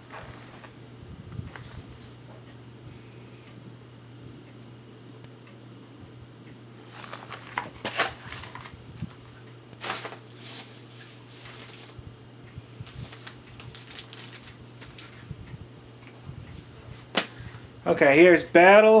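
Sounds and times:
books and papers rustling: 0.0s - 0.8s, 1.5s - 2.2s, 6.8s - 12.0s, 12.8s - 15.3s
steady low hum: 0.0s - 19.0s.

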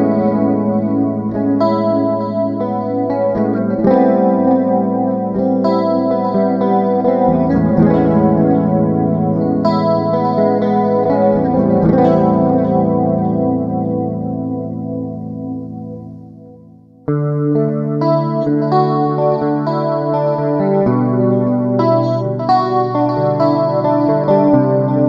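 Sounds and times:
electric guitar sustained chords: 0.0s - 25.0s.

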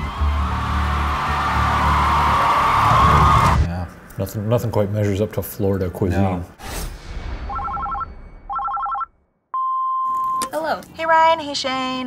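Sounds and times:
steady beep: 7.4s - 10.5s
telephone ringing: 7.5s - 9.1s.

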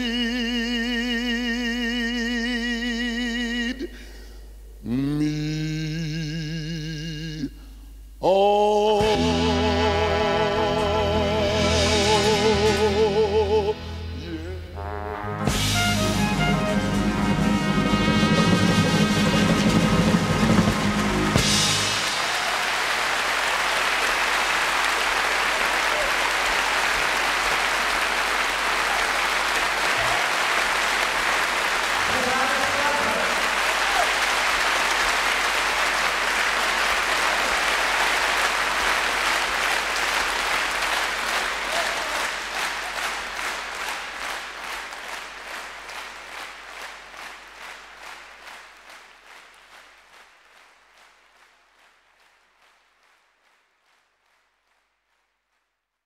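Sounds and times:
audience applauding: 16.3s - 55.0s.

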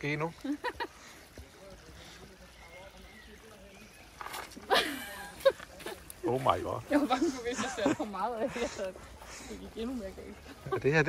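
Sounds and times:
small stream trickling: 0.0s - 11.0s
shoes squelching in wet mud: 0.4s - 11.0s.

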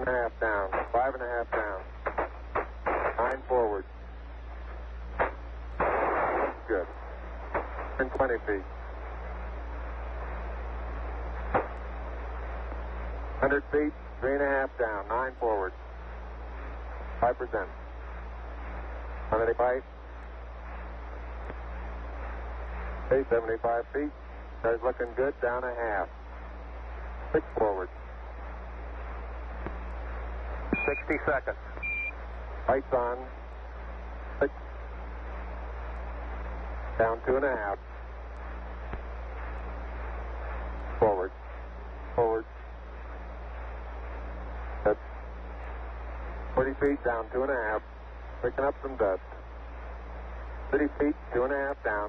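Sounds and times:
man's voice over radio: 0.0s - 2.3s, 2.9s - 3.9s, 6.5s - 7.0s, 7.6s - 8.7s, 13.4s - 15.8s, 17.2s - 17.8s, 19.2s - 19.9s, 23.0s - 26.2s, 27.3s - 27.9s, 30.7s - 32.0s, 32.6s - 33.4s, 36.9s - 37.9s, 40.9s - 41.5s, 42.1s - 42.7s, 46.6s - 49.4s, 50.7s - 52.0s
sharp radio click: 0.0s - 3.6s, 5.2s - 6.8s, 7.5s - 8.4s, 11.5s - 11.9s, 30.7s - 32.1s
radio static hiss: 0.0s - 52.0s
steady low hum: 0.0s - 52.0s.

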